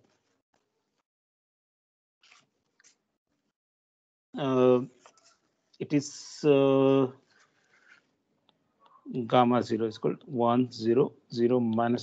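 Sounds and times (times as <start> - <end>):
man saying uh: 4.4 - 4.9, 5.8 - 7.1, 9.1 - 12.0.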